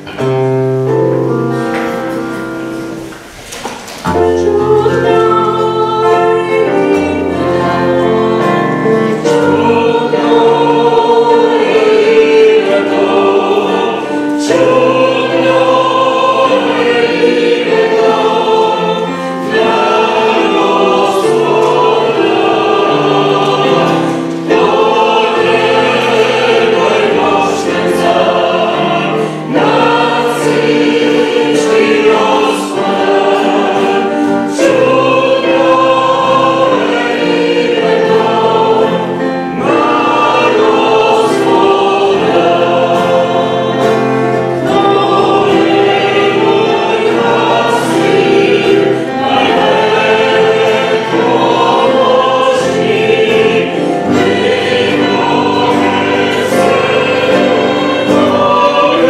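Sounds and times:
acoustic guitar: 0.0s - 59.0s
digital piano: 0.0s - 59.0s
group singing a hymn: 0.0s - 59.0s.

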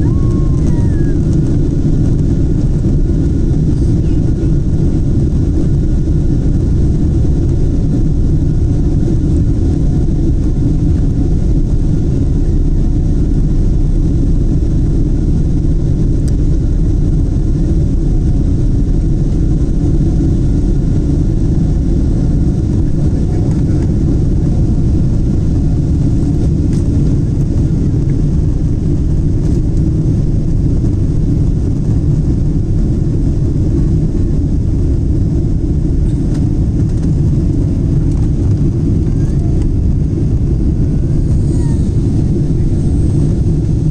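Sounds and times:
jet engines deep rumble: 0.0s - 43.9s.

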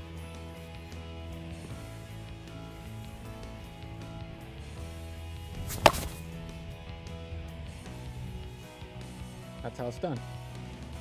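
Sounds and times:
background music: 0.0s - 11.0s
baseball bat cracking ball: 5.5s - 6.4s.

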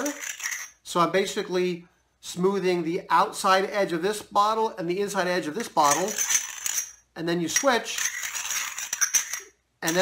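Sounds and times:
glass scraping on glass: 0.0s - 0.8s, 5.8s - 7.0s, 7.6s - 10.0s.

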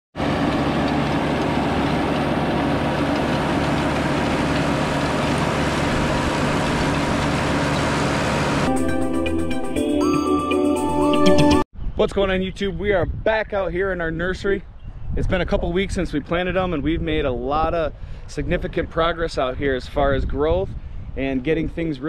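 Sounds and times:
tractor diesel engine running: 0.2s - 10.6s
music: 8.7s - 11.7s.

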